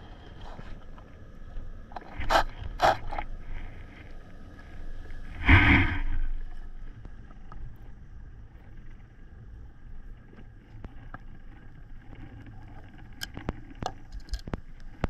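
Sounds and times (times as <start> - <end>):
low underwater rumble: 0.0 - 15.0
sharp underwater clicks: 12.9 - 15.0.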